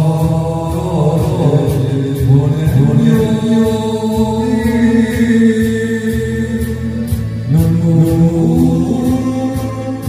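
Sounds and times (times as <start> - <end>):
backing track: 0.0 - 10.0
man singing into a microphone: 0.0 - 10.0.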